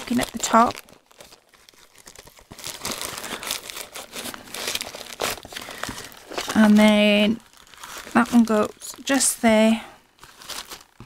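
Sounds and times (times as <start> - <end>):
paper rustling and crinkling: 0.0 - 9.2, 10.2 - 11.0.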